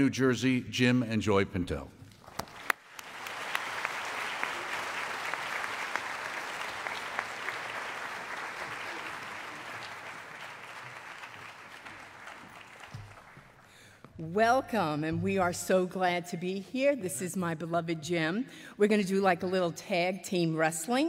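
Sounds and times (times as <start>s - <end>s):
large audience applauding: 2.2s - 13.9s.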